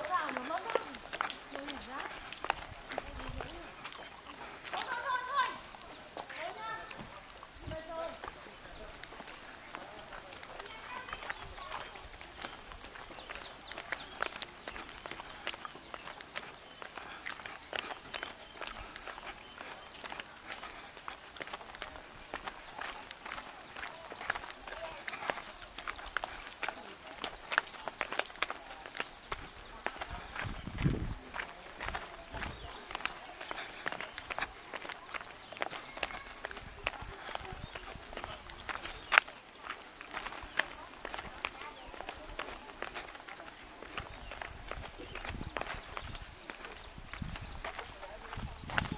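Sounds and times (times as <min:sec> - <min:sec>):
footsteps on concrete: 0:00.0 - 0:48.9.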